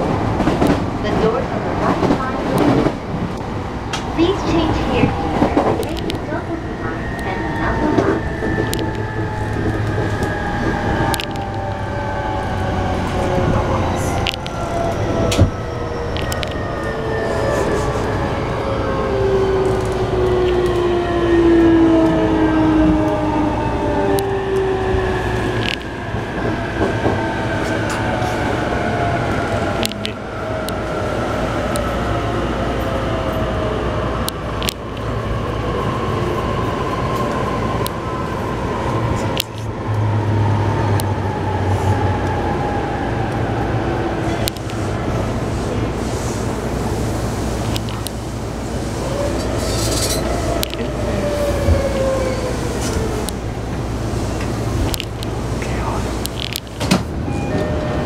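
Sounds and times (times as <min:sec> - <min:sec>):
low train rumble: 0:00.0 - 0:58.0.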